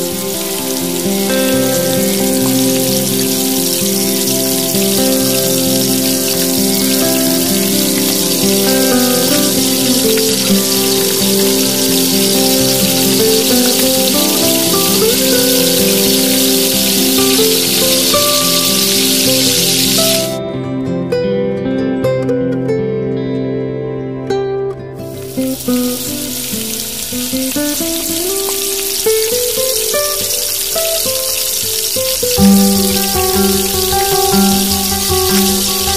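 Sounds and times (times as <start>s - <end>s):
hot oil sizzling: 0.0s - 20.4s, 25.0s - 35.9s
background music: 0.0s - 35.9s.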